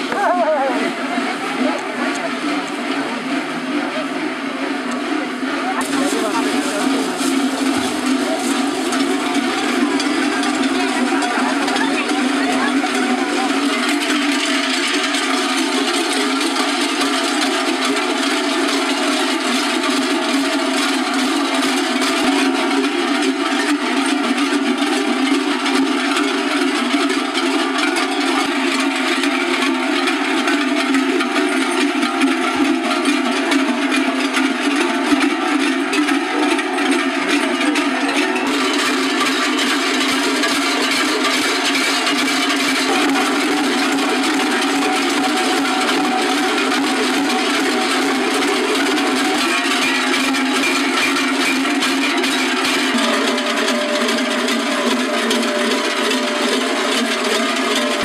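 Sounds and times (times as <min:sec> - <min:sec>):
cowbells clanging: 0:00.0 - 0:58.0.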